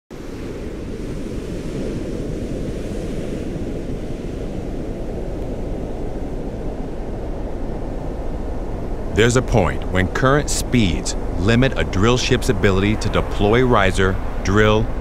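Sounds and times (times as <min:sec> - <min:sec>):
waves rumbling: 0:00.1 - 0:15.0
wind hiss: 0:00.2 - 0:15.0.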